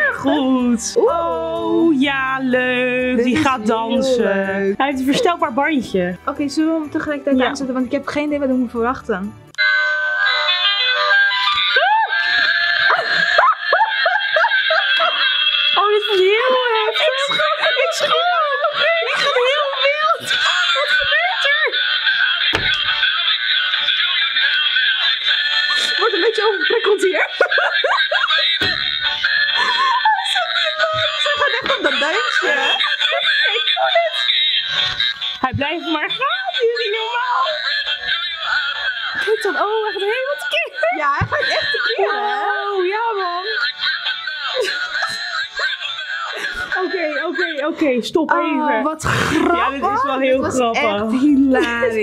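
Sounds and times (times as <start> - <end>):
musical toy hats playing a tune: 9.3 - 48.8
shrieks: 9.6 - 17.3
women shrieking and laughing: 11.4 - 22.8, 25.9 - 34.4, 39.1 - 47.7.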